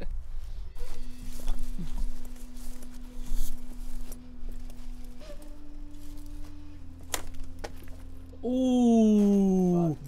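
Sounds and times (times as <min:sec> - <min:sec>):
steady low hum: 0:00.0 - 0:10.0
footsteps through grass: 0:00.2 - 0:08.4.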